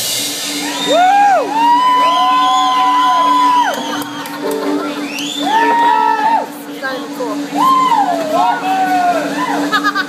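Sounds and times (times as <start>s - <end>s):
audience whooping and cheering: 0.4s - 10.0s.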